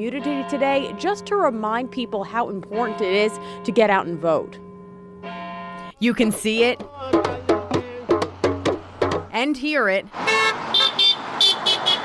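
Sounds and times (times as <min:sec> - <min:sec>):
car horns honking: 0:00.0 - 0:04.0, 0:04.7 - 0:09.2, 0:10.2 - 0:12.0
traffic noise: 0:00.0 - 0:12.0.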